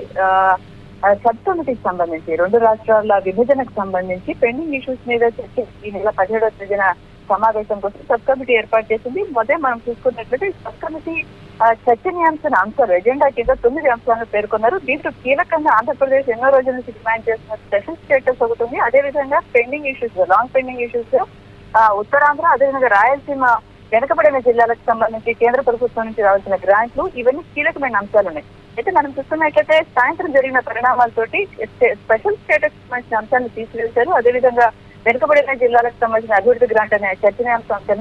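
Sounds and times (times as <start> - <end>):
woman speaking over telephone: 0.0 - 38.0.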